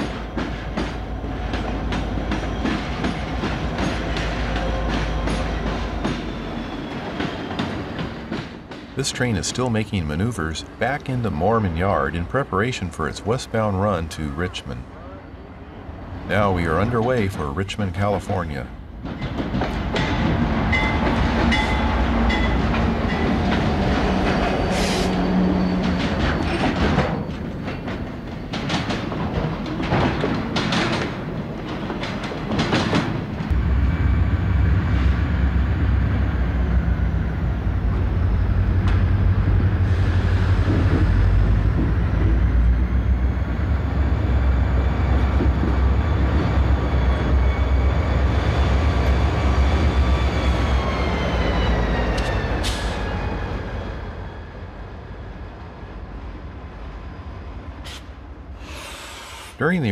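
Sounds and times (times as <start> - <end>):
wheels clicking over rail joints: 25.8 - 33.5
locomotive engine running: 27.4 - 51.4.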